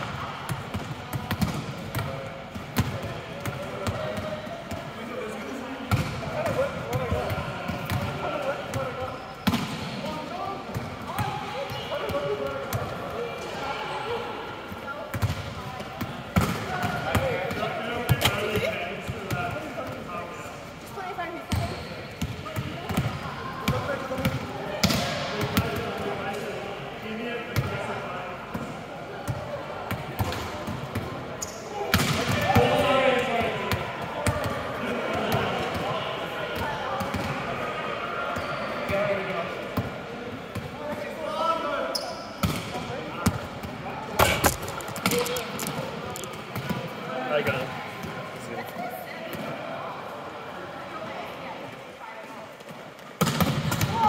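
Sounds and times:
players' voices: 0.0 - 54.0
volleyballs thudding: 0.4 - 4.8, 15.1 - 20.0, 42.4 - 46.9, 53.2 - 54.0.

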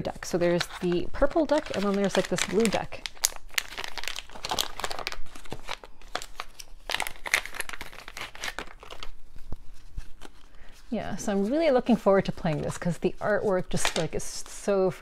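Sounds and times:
plastic packaging crinkling: 0.0 - 14.7.

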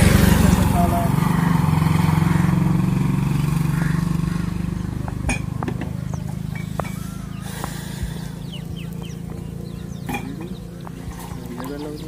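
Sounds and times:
steady low hum: 0.0 - 12.0
rising bird calls: 0.4 - 5.2, 5.9 - 12.0
high bird chirps: 0.7 - 1.6, 6.0 - 12.0.

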